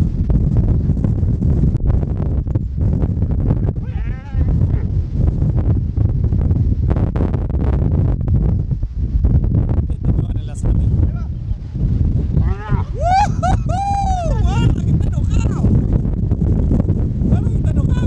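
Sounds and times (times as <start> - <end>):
wind buffeting microphone: 0.0 - 18.0
calf bawling: 3.7 - 4.9, 12.4 - 13.0.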